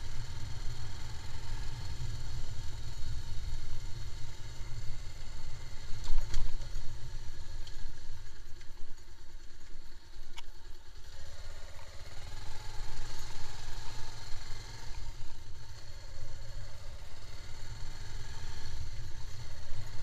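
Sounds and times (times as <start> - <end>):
motorcycle engine at low speed: 0.0 - 20.0
wind and road rumble: 0.0 - 20.0.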